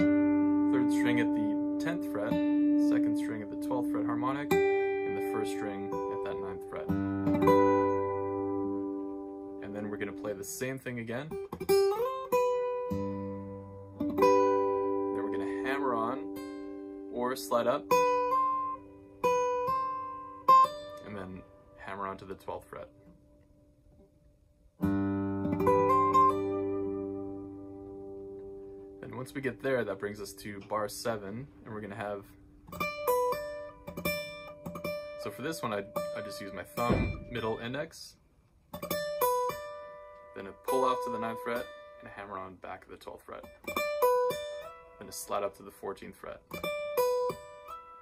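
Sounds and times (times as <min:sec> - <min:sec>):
fingerpicked acoustic guitar: 0:00.0 - 0:48.0
acoustic guitar plucked note: 0:24.8 - 0:38.0.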